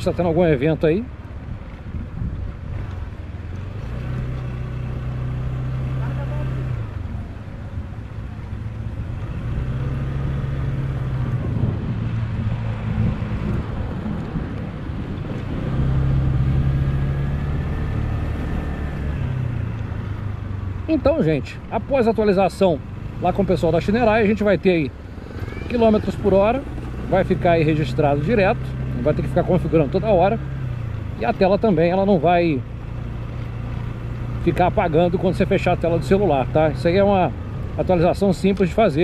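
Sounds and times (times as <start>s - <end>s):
scooter engine running: 4.8s - 39.0s.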